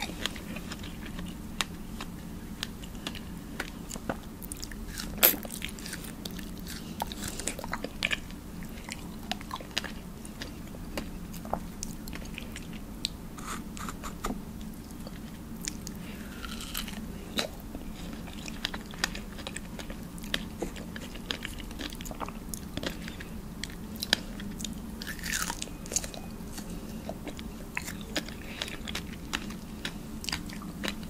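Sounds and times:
chewing strawberry: 0.0 - 14.0, 14.6 - 31.0
faint low hum: 0.0 - 31.0.

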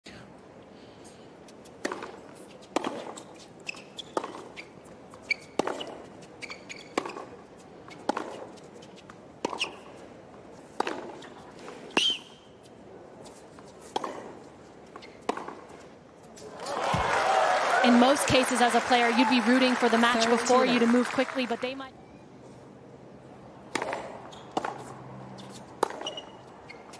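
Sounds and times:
shoes squeaking on court: 1.5 - 16.6, 23.8 - 26.9
racket hitting tennis ball: 1.7 - 4.6, 5.2 - 9.9, 10.6 - 12.1, 13.2 - 17.1, 23.6 - 26.9.

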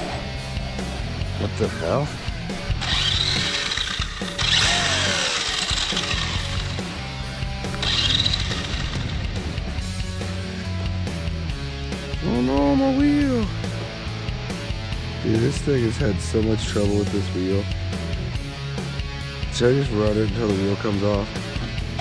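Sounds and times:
background music with bass line: 0.0 - 22.0
high electric motor whirring: 2.7 - 9.4.

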